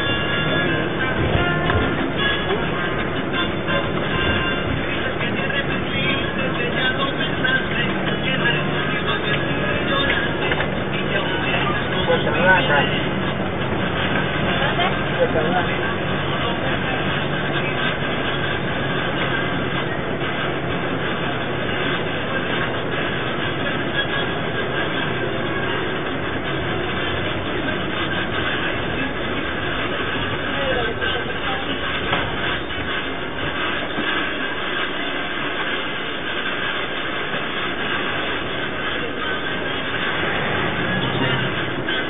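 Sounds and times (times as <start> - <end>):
bus rumble and rattle: 0.0 - 42.0.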